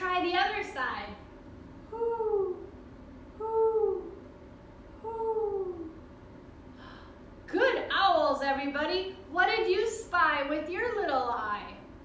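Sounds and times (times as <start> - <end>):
woman hooting like an owl: 1.9 - 2.8, 3.4 - 4.2, 5.0 - 6.0.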